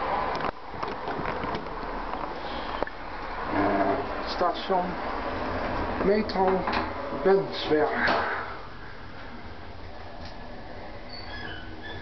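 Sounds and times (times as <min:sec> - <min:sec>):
person speaking: 0:06.0 - 0:08.4.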